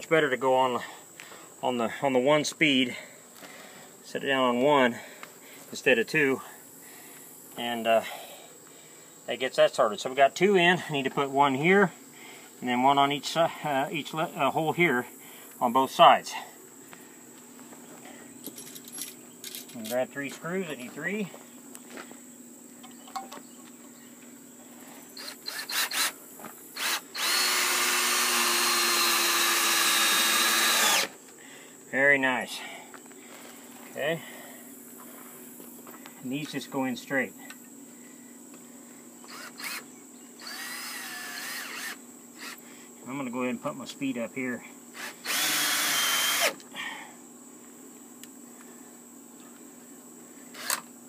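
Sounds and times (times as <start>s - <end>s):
crickets droning: 0.0s - 51.0s
loose screws rattling: 18.5s - 20.0s
cordless drill driving screw: 25.2s - 26.2s, 26.8s - 31.1s, 39.3s - 39.8s, 40.4s - 42.6s, 45.0s - 46.6s, 50.6s - 50.8s.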